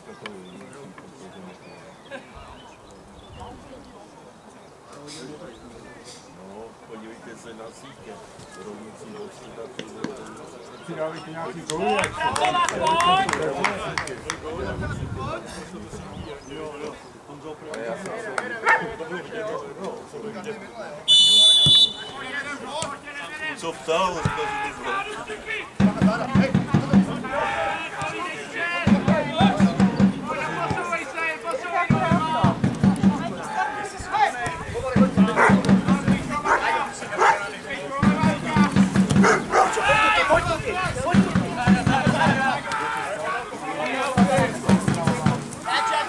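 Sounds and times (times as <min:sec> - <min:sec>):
indistinct talking voices: 0:00.0 - 0:46.0.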